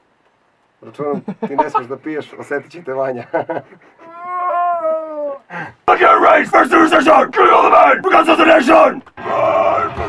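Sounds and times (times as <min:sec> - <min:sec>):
harsh shouted metal vocals: 0:05.9 - 0:10.0.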